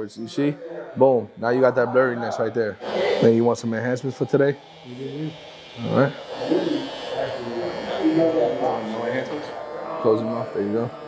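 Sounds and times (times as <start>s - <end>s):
voices talking: 0.0s - 11.0s
electric hair trimmer buzzing: 2.7s - 10.6s.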